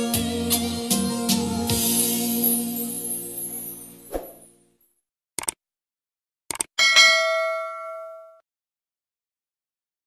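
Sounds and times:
notification bell ding: 0:06.8 - 0:08.4.

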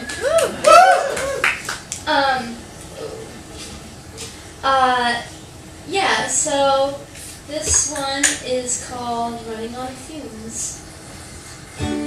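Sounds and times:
scattered handclaps: 0:00.0 - 0:02.0.

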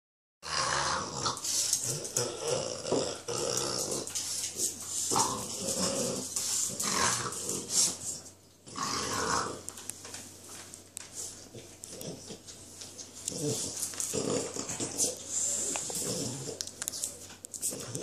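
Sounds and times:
dogs growling: 0:00.4 - 0:09.7, 0:11.5 - 0:12.6, 0:13.2 - 0:18.0.

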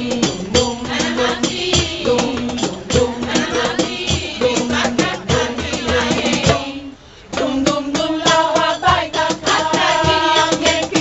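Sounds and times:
drum strokes: 0:00.0 - 0:11.0
women's choir singing: 0:00.0 - 0:11.0.

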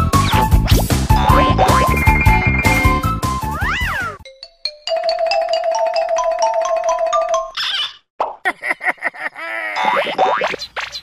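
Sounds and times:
sliding cartoon sound effects: 0:01.2 - 0:04.2
tinkling mallet instrument tune: 0:04.2 - 0:07.5.

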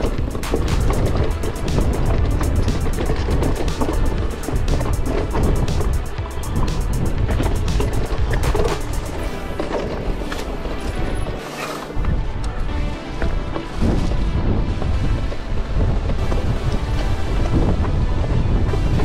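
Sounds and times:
background music: 0:00.0 - 0:19.0
strong wind buffeting microphone: 0:00.0 - 0:19.0.

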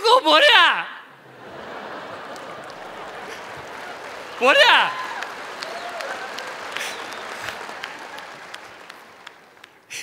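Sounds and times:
audience applauding: 0:01.2 - 0:10.0.

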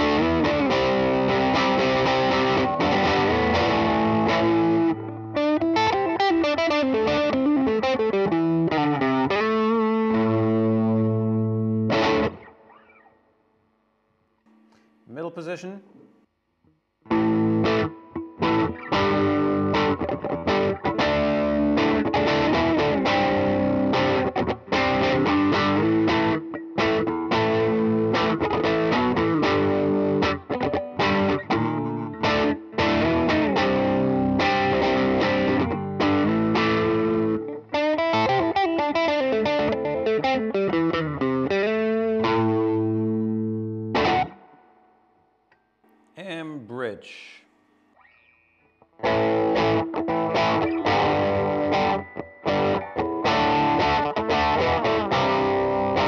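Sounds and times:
overdriven electric guitar: 0:00.0 - 0:13.2, 0:17.0 - 0:44.9, 0:48.0 - 0:56.0.

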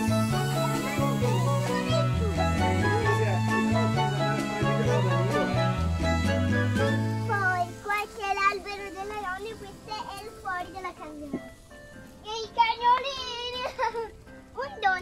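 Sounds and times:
background music: 0:00.0 - 0:15.0
girl talking: 0:07.3 - 0:11.4, 0:14.6 - 0:15.0.

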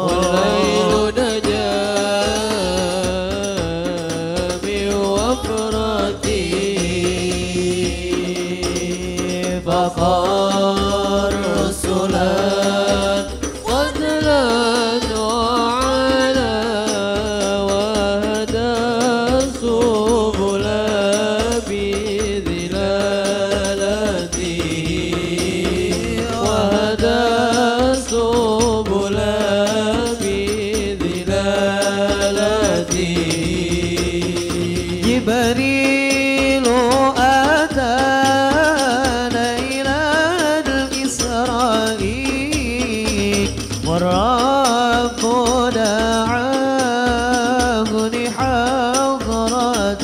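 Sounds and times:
group singing devotional verse: 0:00.0 - 0:50.0
hand frame drums: 0:00.0 - 0:50.0.

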